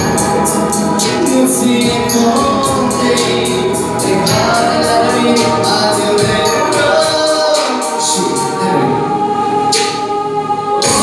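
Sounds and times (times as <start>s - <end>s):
backing track with drum beat: 0.0s - 10.2s, 10.8s - 11.0s
man and woman singing duet: 0.0s - 11.0s.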